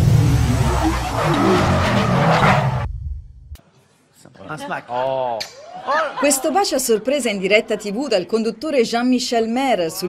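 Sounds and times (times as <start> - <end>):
low engine rumble: 0.0 - 1.9
car tyres squealing: 0.0 - 2.9.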